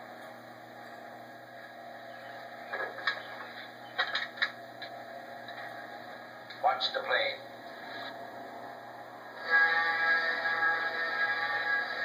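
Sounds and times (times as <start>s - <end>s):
old film soundtrack hiss: 0.0s - 12.0s.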